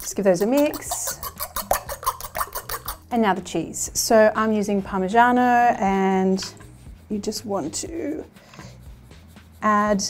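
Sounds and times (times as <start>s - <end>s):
metal spoon beating eggs in bowl: 0.0s - 3.2s.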